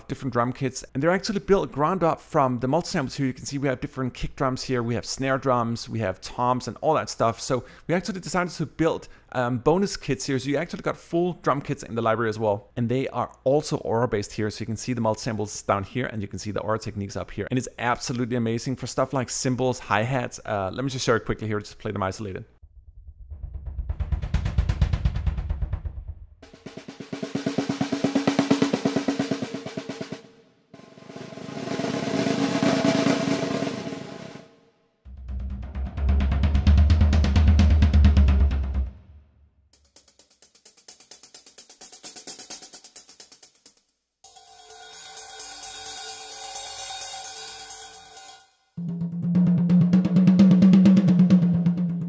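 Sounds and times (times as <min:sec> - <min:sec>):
low heavy drum strokes: 0:23.0 - 0:30.2, 0:30.8 - 0:34.4, 0:35.1 - 0:39.0
mid drum strokes: 0:23.3 - 0:34.5, 0:35.1 - 0:39.0, 0:44.3 - 0:52.0
hi-hat and cymbal strokes: 0:39.8 - 0:48.6.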